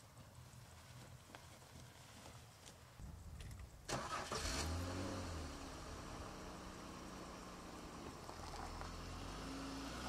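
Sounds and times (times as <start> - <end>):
car engine starting and idling: 3.8 - 10.0.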